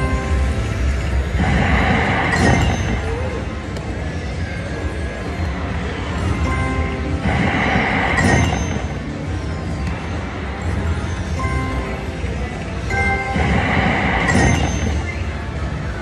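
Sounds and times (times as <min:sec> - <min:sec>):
slot machine spin music and chimes: 0:00.0 - 0:03.6, 0:06.2 - 0:09.4, 0:10.1 - 0:16.0
casino machine music: 0:06.3 - 0:09.4, 0:10.1 - 0:16.0.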